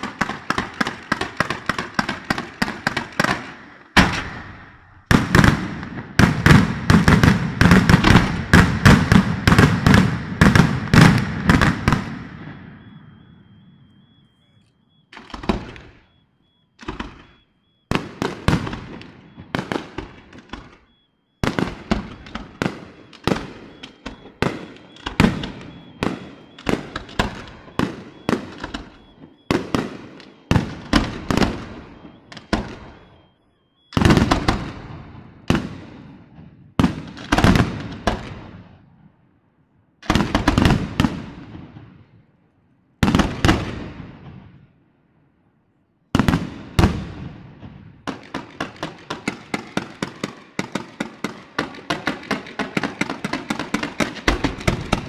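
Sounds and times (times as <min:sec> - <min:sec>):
fireworks bursting: 0:00.0 - 0:39.0, 0:40.0 - 0:42.1, 0:43.0 - 0:44.6, 0:46.1 - 0:55.0.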